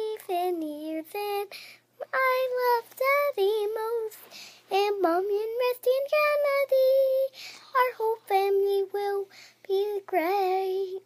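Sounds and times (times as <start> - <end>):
girl singing: 0.0 - 11.0.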